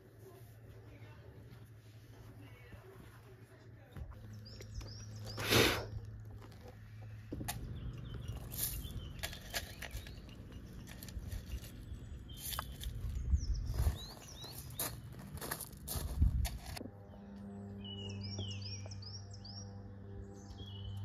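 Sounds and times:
outdoor background rumble: 0.0 - 21.0
small birds chirping: 3.8 - 16.1, 17.0 - 21.0.

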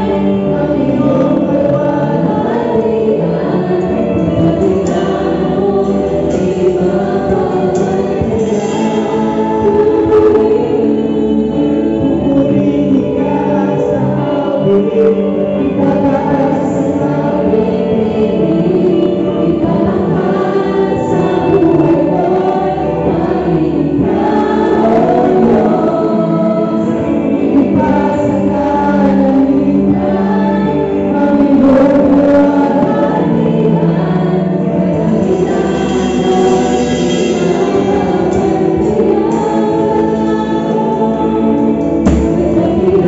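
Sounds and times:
band accompaniment: 0.0 - 43.0
singers performing a worship song: 0.0 - 43.0.

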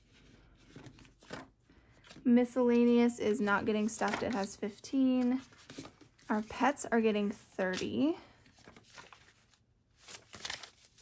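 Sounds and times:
banknotes rustling: 0.0 - 11.0.

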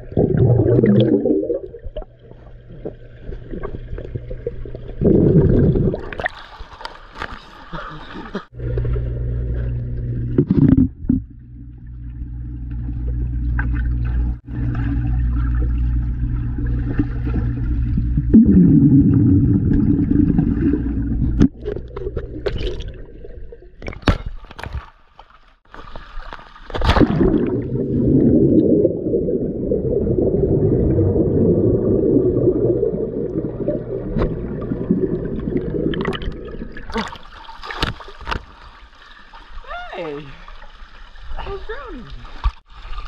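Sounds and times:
water splashing in pool: 0.0 - 43.0
muffled underwater hum: 8.6 - 22.6, 27.4 - 37.1.

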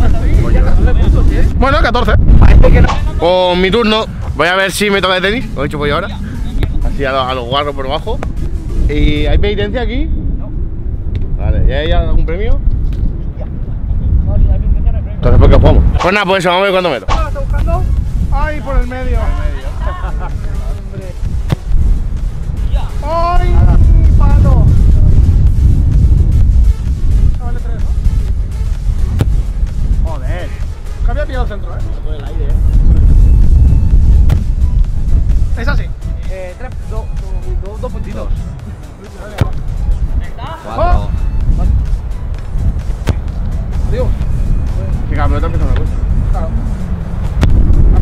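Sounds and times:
low rumble: 0.0 - 16.2, 17.1 - 38.8, 39.4 - 48.0
wind buffeting microphone: 0.0 - 48.0
sharp knock: 17.0 - 17.7
ball kicked thud: 21.4 - 21.7, 39.3 - 39.6, 43.0 - 43.3.

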